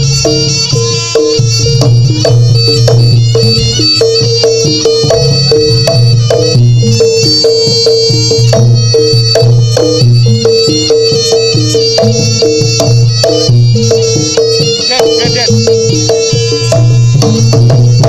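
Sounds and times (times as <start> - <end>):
drum strokes: 0.0 - 18.0
gamelan music: 0.0 - 18.0
high melody line: 0.0 - 18.0.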